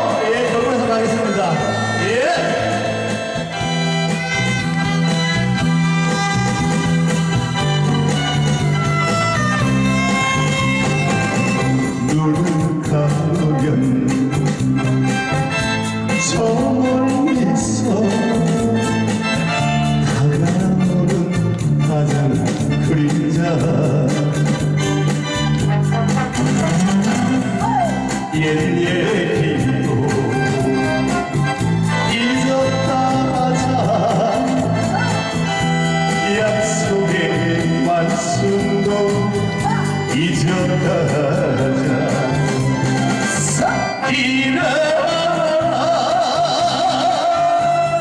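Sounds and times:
man singing into microphone: 0.0 - 3.6, 11.8 - 14.4, 16.1 - 24.7, 26.7 - 35.4, 36.0 - 48.0
band accompaniment: 0.0 - 48.0
soprano saxophone melody: 29.6 - 32.3.

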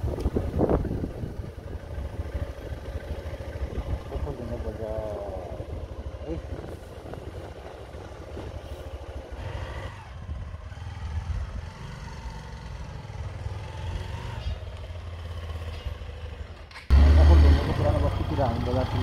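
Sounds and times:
wind rumble on microphone: 0.0 - 4.6, 5.4 - 11.8
loud wind buffeting: 0.0 - 11.9
motorcycle engine passing: 0.0 - 19.0.

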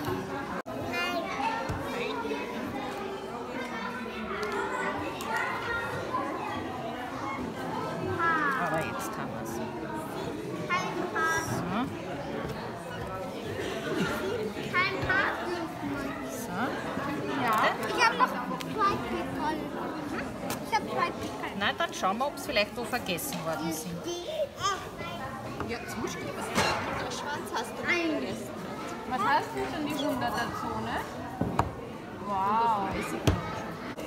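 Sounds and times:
children and adults talking: 0.0 - 34.0
people chattering: 0.0 - 34.0.

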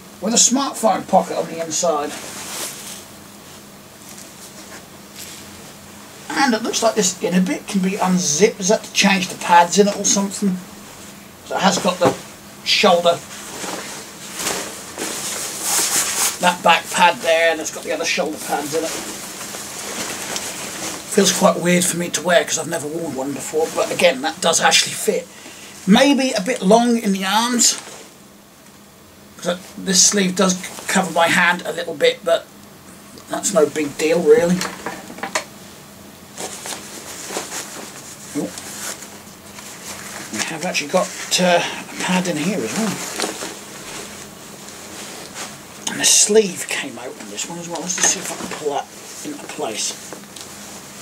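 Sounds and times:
fabric jacket rustling: 0.4 - 28.3, 33.0 - 51.0.

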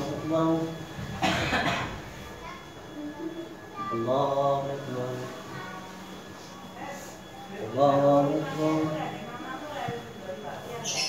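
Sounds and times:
person coughing: 1.2 - 2.0.

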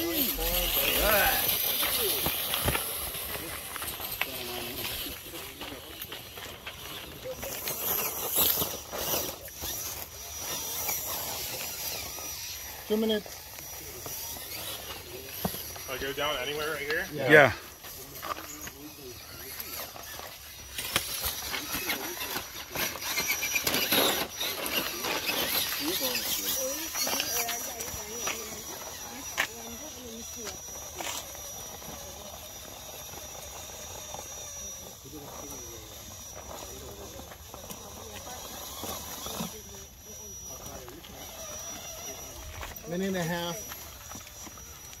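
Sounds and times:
tyres scraping and clicking on stone: 0.0 - 39.6
electric motor and gears whirring: 0.0 - 45.0.

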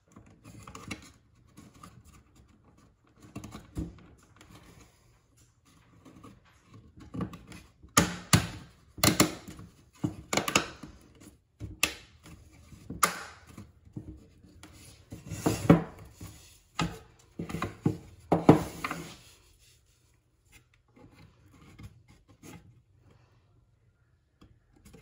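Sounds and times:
wooden pieces knocking and clicking: 7.0 - 14.2
wood rubbing: 12.2 - 22.8.

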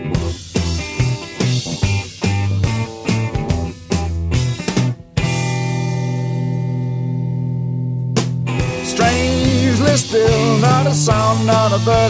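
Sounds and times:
drum kit: 0.0 - 6.9, 7.9 - 12.0
bass guitar: 0.0 - 12.0
electric guitar: 0.0 - 12.0.

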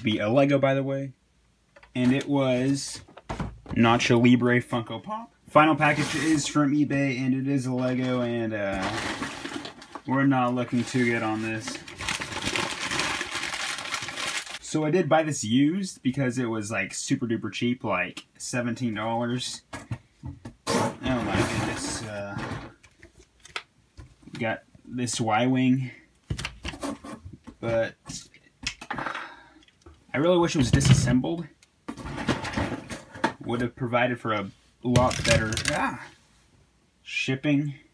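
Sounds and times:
packaging rustling and crinkling: 8.8 - 14.6.

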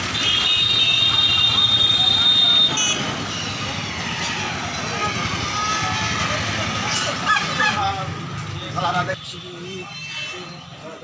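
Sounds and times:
traffic: 0.0 - 11.0.

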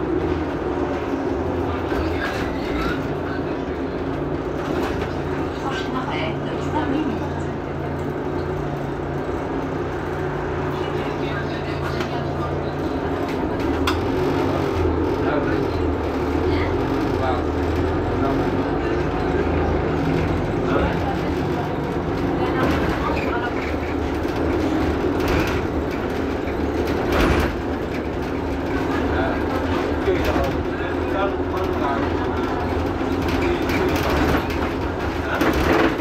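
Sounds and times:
bus engine idling: 0.0 - 36.0.

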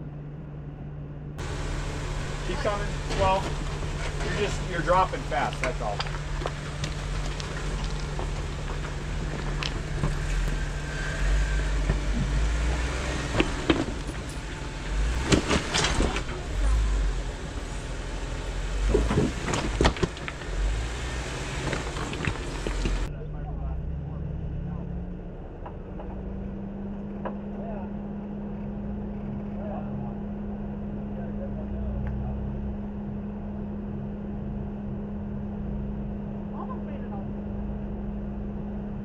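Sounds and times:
engine running at low revs: 0.0 - 39.0.

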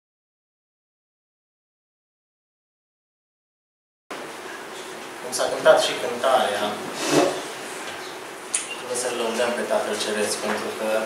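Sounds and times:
man speaking: 8.8 - 11.0.

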